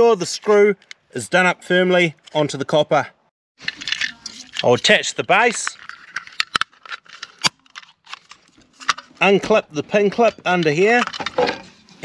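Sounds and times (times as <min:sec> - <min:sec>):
plastic clicks and scrapes: 0:03.6 - 0:09.2, 0:10.1 - 0:12.0.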